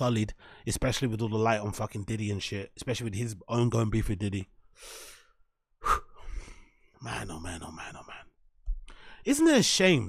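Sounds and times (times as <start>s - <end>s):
man breathing and sighing: 4.8s - 7.0s, 8.8s - 9.2s
sharp mouth sound: 5.8s - 6.3s.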